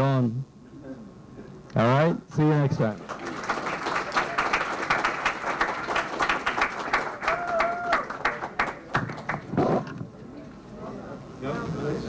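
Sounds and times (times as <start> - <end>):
audience applause: 3.0 - 9.6.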